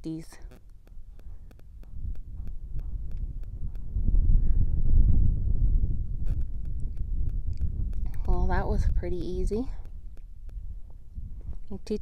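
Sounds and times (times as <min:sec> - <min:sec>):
wind buffeting microphone: 0:00.4 - 0:12.0.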